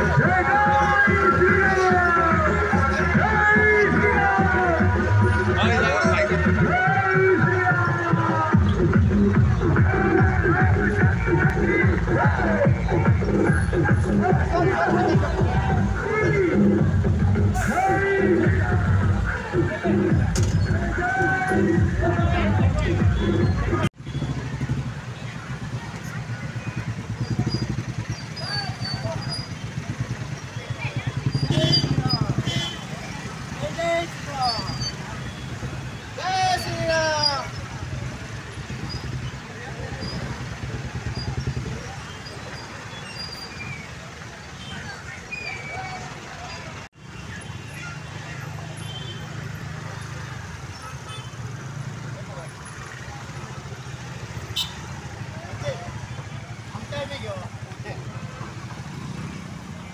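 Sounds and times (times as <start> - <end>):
voices: 0.0 - 59.9
motorcycle engines running slowly: 22.0 - 45.3, 45.9 - 59.9.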